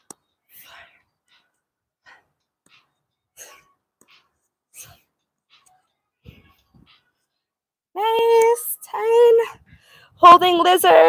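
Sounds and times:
woman breathing forcefully: 0:09.6 - 0:10.2.

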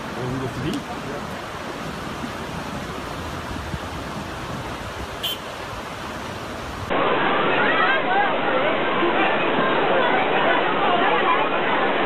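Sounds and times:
flood water rushing: 0:00.0 - 0:12.0
people's voices: 0:07.2 - 0:12.0.

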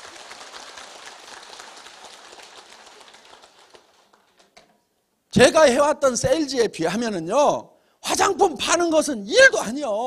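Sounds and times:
audience applauding: 0:00.0 - 0:04.5.

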